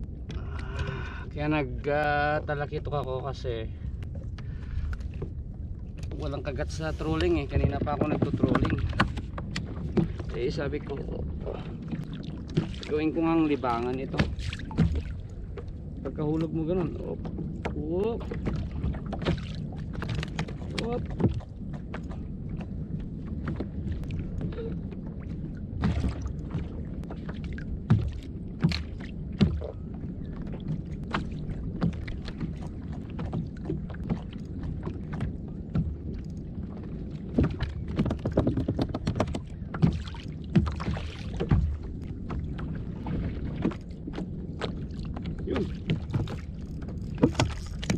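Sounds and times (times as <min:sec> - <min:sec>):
wind and water rumble: 0:00.0 - 0:47.9.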